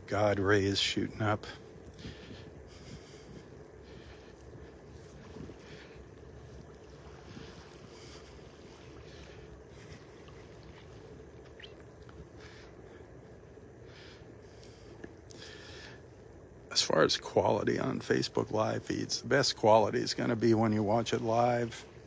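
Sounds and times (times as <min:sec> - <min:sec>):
faint steady hum: 0:00.0 - 0:22.0
light wind on microphone: 0:01.0 - 0:13.7.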